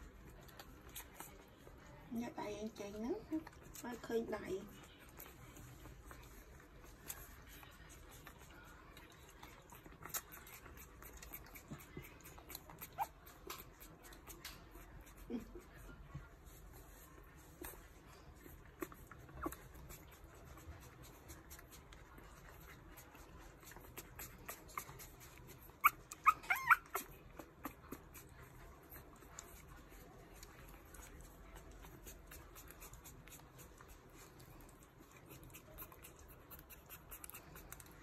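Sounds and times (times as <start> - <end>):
puppies squeaking and whimpering: 22.7 - 29.7.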